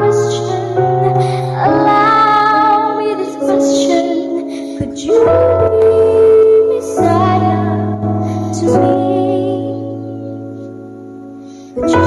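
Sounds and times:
girl singing: 0.0 - 10.4, 11.8 - 12.0.

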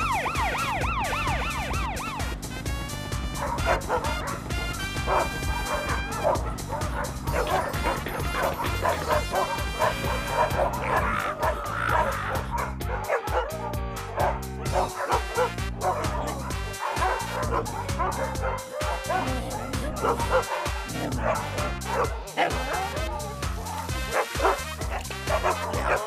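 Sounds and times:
background music with steady beat: 0.0 - 26.0
cartoon dogs barking and yipping: 3.3 - 26.0.

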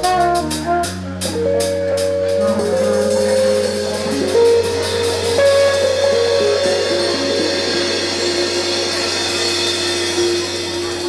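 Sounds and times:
drum kit: 0.0 - 11.0
electric bass: 0.0 - 11.0
saxophone: 0.0 - 11.0
electric guitar: 0.7 - 11.0
cymbal wash: 1.3 - 11.0.

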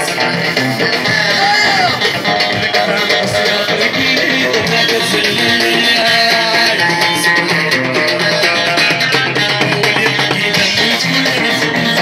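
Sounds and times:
plucked lutes and drums: 0.0 - 12.0.

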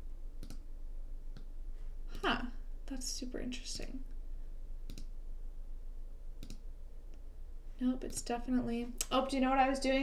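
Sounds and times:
faint low hum: 0.0 - 10.0
computer mouse clicks: 0.4 - 0.7, 4.8 - 5.1, 6.4 - 7.2.

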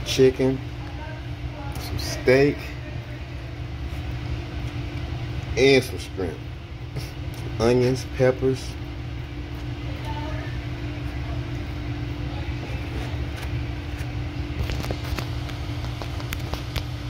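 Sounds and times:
low machine hum: 0.0 - 17.0.

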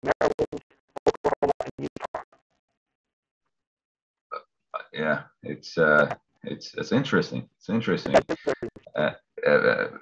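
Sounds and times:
choppy voice bursts: 4.8 - 10.0
person speaking: 4.8 - 10.0.

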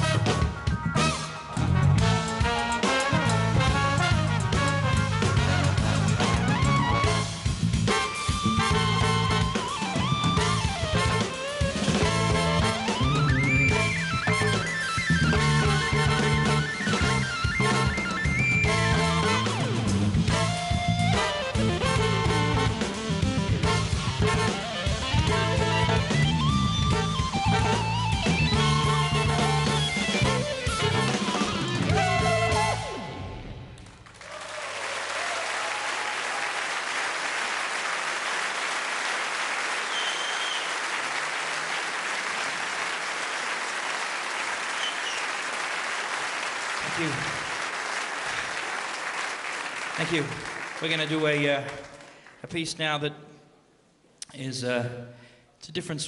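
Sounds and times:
jazz band playing: 0.0 - 33.4
audience applause: 33.8 - 52.4.

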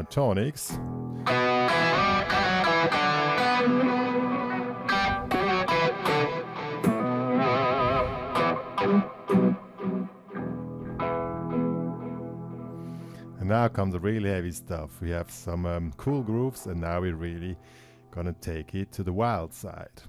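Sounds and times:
electric guitar lead with delay: 0.8 - 13.4.

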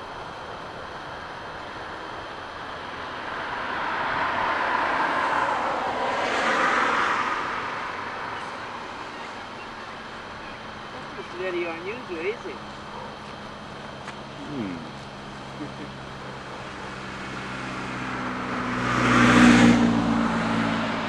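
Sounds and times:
vehicle passing by: 2.8 - 13.1, 14.3 - 21.0.

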